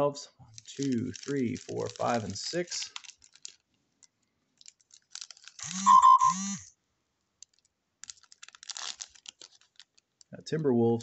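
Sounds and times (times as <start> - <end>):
foil wrapper crinkling and tearing: 0.5 - 5.8, 7.4 - 10.3.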